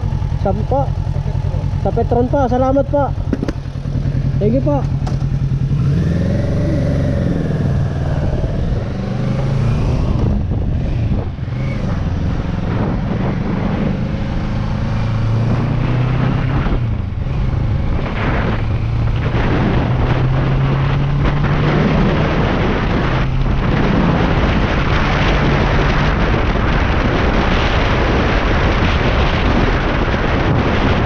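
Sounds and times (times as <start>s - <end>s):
motorcycle engine accelerating: 0.0s - 31.0s
wind noise on microphone: 0.0s - 31.0s.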